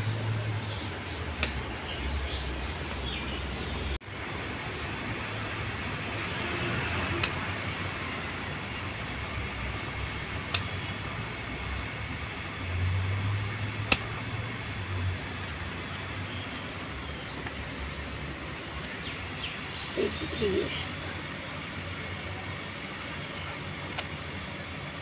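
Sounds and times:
outdoor background noise: 0.0s - 25.0s
scissors snipping: 1.4s - 1.6s, 7.1s - 7.5s, 10.4s - 10.7s, 13.8s - 14.2s.

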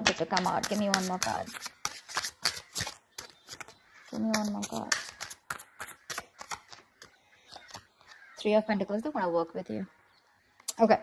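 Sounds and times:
cards shuffled by hand: 0.1s - 8.2s.

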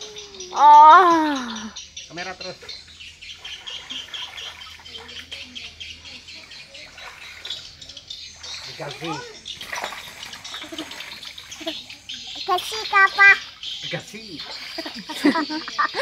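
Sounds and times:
birds chirping: 0.0s - 16.0s
muddy water sloshing and splashing: 2.4s - 16.0s.

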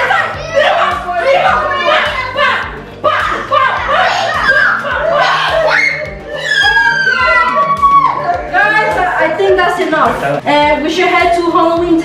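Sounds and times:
children's voices: 0.0s - 9.7s
excited voices shouting: 0.0s - 9.7s
background music: 0.0s - 12.0s.

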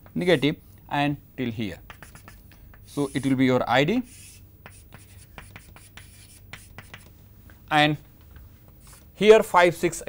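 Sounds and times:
chalk scraping on chalkboard: 1.9s - 3.4s, 4.0s - 7.1s.

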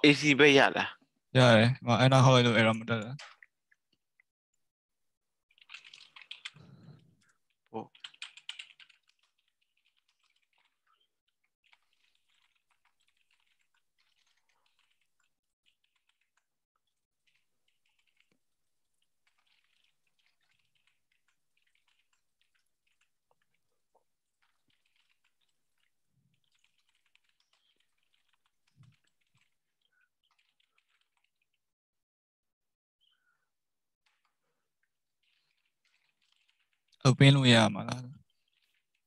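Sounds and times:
typing on keyboard: 5.6s - 6.9s, 7.9s - 9.3s.

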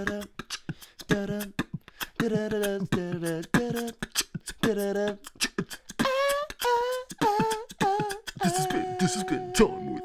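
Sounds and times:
beatboxed clicks: 0.0s - 10.0s
young man singing a cappella: 0.0s - 10.0s.

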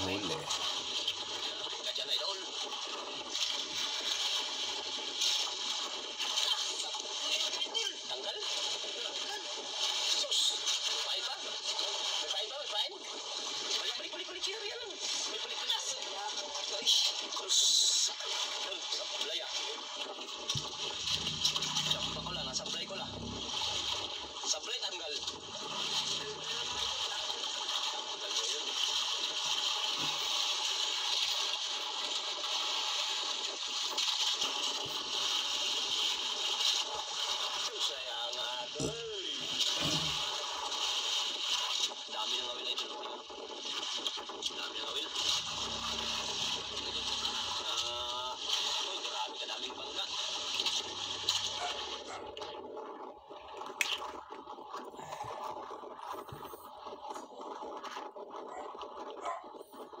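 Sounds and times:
sea noise: 20.5s - 31.0s, 44.8s - 60.0s
indistinct voices: 20.6s - 24.2s, 45.2s - 48.4s.

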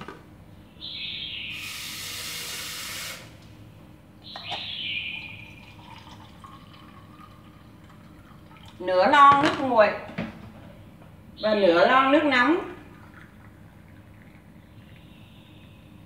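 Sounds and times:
water pouring into tin can: 5.4s - 8.8s.

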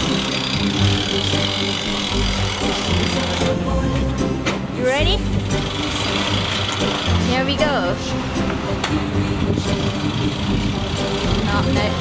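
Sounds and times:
engine running with low rumble: 0.0s - 12.0s.

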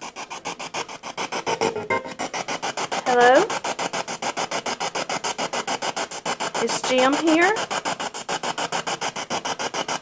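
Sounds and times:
choppy radio static pulsing: 1.4s - 2.4s.

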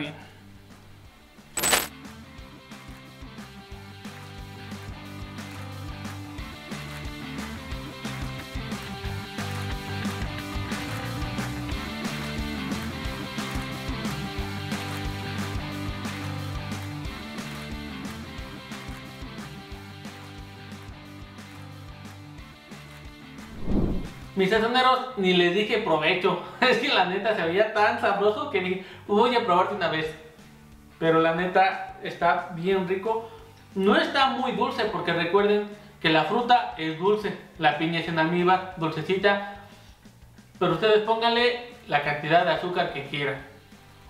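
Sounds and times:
background music: 0.0s - 44.0s.

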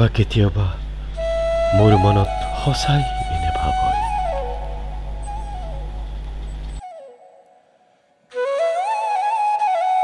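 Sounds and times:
low sustained drone: 0.9s - 6.8s
flute-like melody: 1.2s - 10.0s.

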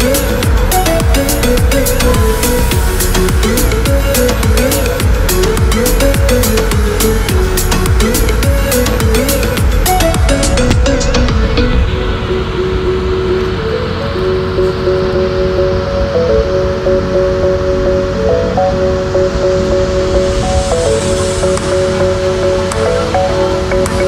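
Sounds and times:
slow melodic music: 0.0s - 24.0s
steady rushing noise: 0.0s - 24.0s.

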